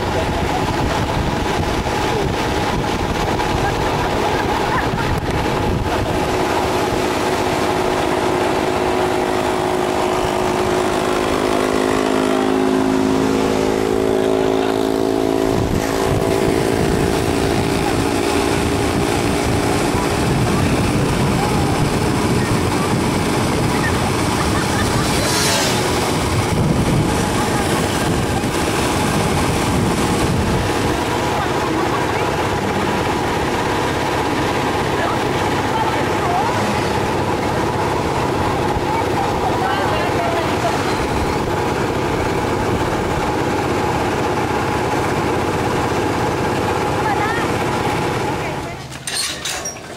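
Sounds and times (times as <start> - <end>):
wind and road noise: 0.0 - 49.9
small motorcycle engines droning: 3.5 - 49.9.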